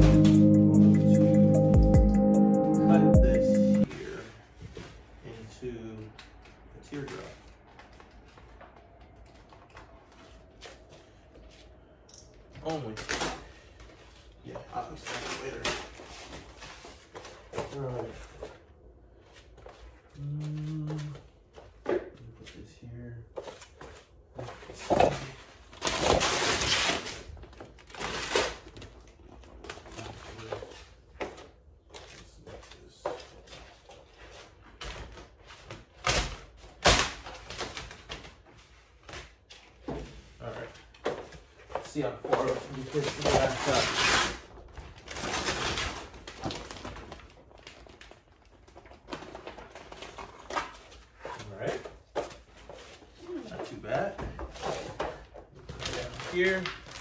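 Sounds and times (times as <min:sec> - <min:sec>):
vinyl film rustling and crinkling: 0:06.2 - 0:57.0
film crinkling: 0:41.0 - 0:54.0, 0:54.6 - 0:57.0
squeegee scratching on vinyl film: 0:42.8 - 0:44.5.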